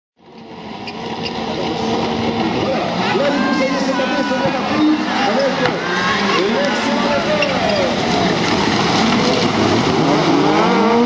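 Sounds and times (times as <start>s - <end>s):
race car engines at steady revs: 0.2s - 11.0s.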